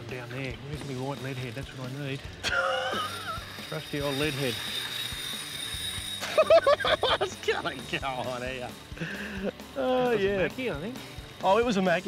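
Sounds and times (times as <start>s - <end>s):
man laughing: 2.4s - 3.5s, 6.2s - 7.4s, 9.0s - 9.6s.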